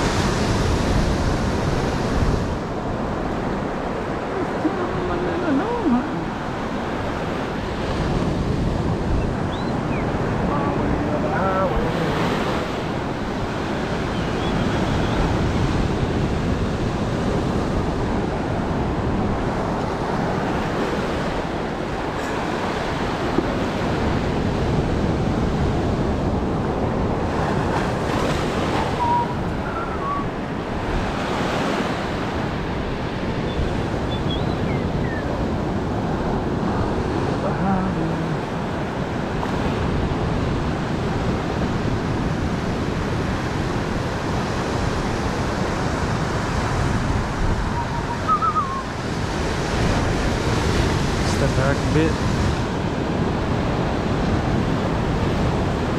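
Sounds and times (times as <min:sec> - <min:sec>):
ocean surf breaking: 0:00.0 - 0:55.9.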